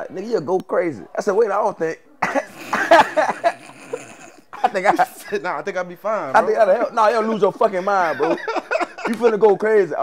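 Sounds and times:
man laughing: 0:02.2 - 0:05.6, 0:06.4 - 0:09.6.

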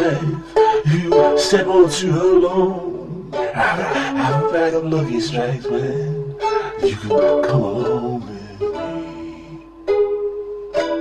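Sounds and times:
plucked string instrument: 0:00.0 - 0:11.0.

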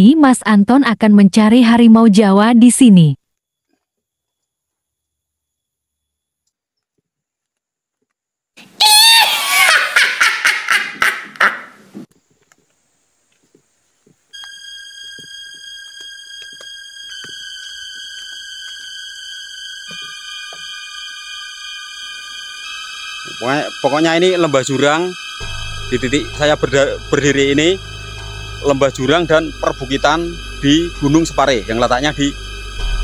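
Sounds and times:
rapid pulsing wavering tone: 0:14.4 - 0:33.0
sustained synthesizer music: 0:14.4 - 0:33.0.

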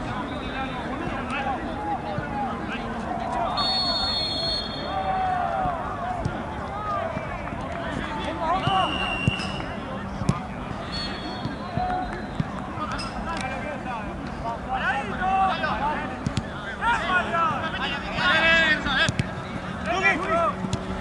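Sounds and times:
players shouting: 0:00.1 - 0:21.0.

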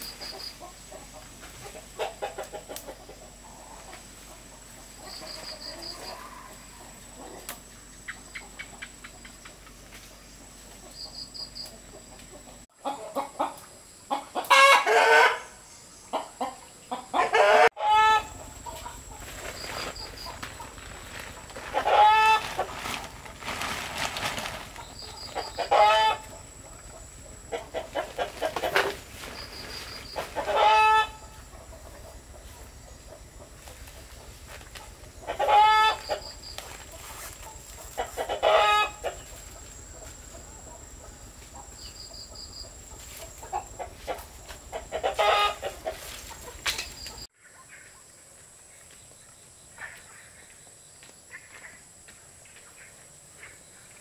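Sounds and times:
chickens clucking: 0:00.0 - 0:47.8.

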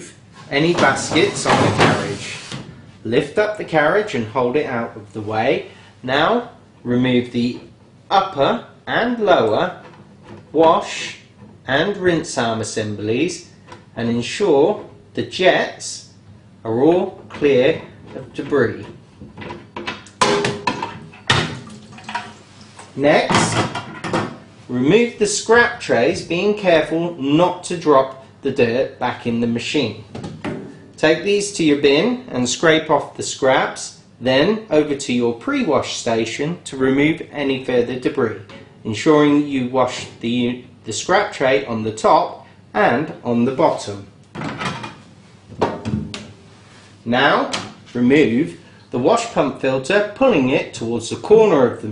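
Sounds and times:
metal tray clattering in steel tank: 0:19.4 - 0:22.4.

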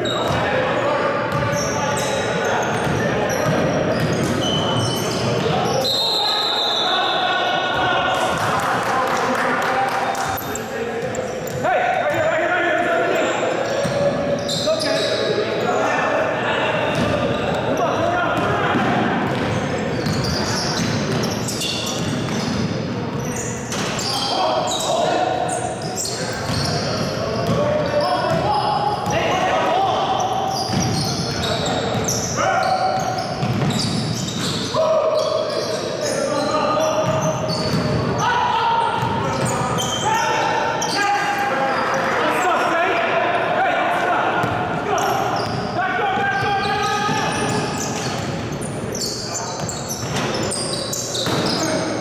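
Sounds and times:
players calling out: 0:00.0 - 0:52.0.

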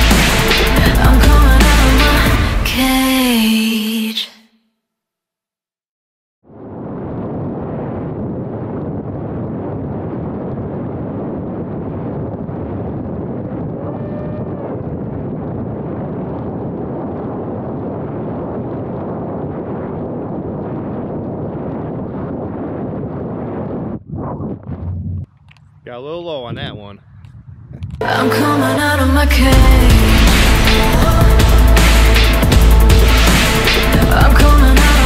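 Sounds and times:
wind rush: 0:00.0 - 0:03.1, 0:06.5 - 0:25.3, 0:26.5 - 0:35.0.

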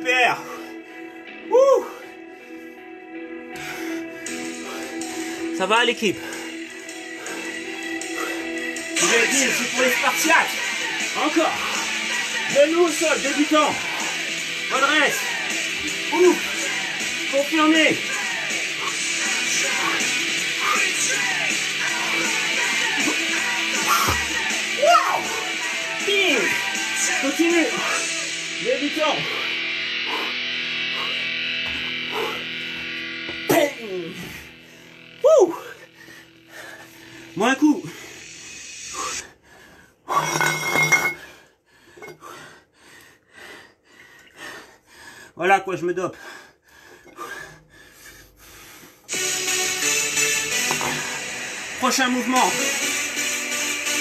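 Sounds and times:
rock music with guitar and singing: 0:06.2 - 0:35.3, 0:49.1 - 0:51.8.

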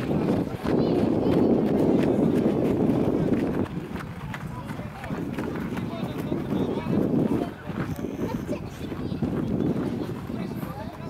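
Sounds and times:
distant voices of children and spectators: 0:00.0 - 0:11.0.

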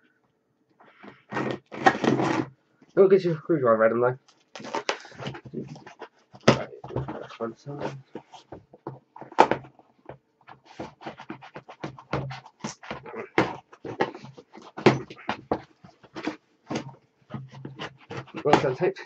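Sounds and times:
scissors cutting packing tape: 0:04.6 - 0:06.1.

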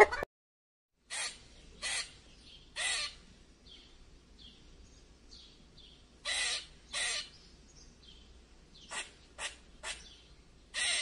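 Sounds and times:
harsh caw-like bird calls: 0:01.1 - 0:03.2, 0:06.2 - 0:07.4, 0:08.8 - 0:11.0.

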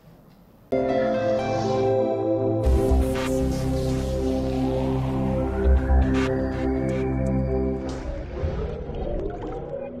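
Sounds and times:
low electronic rumbling: 0:02.6 - 0:10.0.

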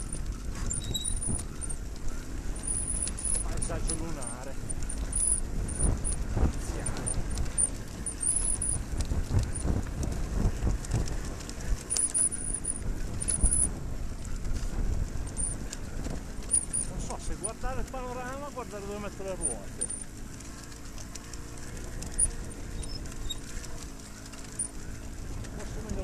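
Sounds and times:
motorcycle low rumble: 0:00.0 - 0:26.0.

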